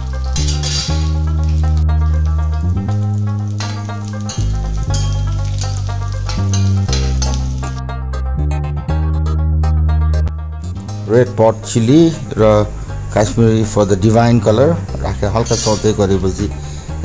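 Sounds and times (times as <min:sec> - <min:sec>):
oil sizzling in a pan: 0:00.0 - 0:07.8
background music low notes: 0:00.0 - 0:17.0.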